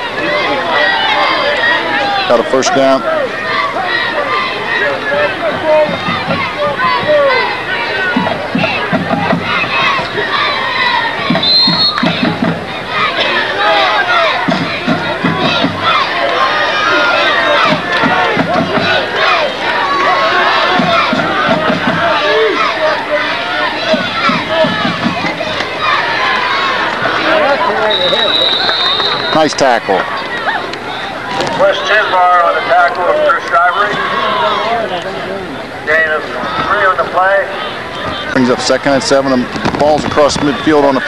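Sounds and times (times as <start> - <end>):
crowd shouting and cheering: 0.0 - 41.0
low rhythmic thumping: 5.6 - 7.2, 8.1 - 10.3, 11.2 - 12.8, 14.4 - 16.1, 17.6 - 19.2, 20.6 - 22.2, 23.8 - 25.8.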